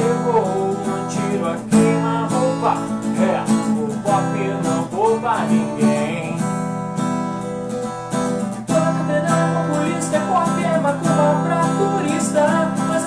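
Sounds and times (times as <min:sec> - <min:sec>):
acoustic guitar strumming chords: 0:00.0 - 0:13.0.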